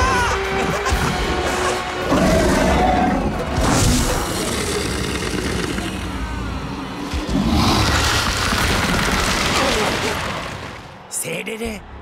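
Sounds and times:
dramatic cartoon music: 0.0 - 10.9
creature growling: 0.6 - 6.3, 7.1 - 10.9.

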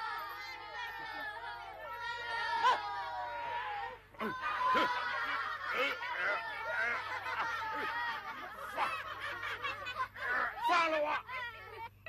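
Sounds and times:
children laughing: 0.0 - 12.0.

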